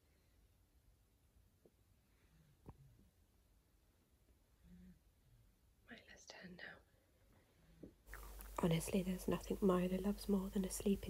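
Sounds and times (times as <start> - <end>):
person whispering: 5.9 - 6.9.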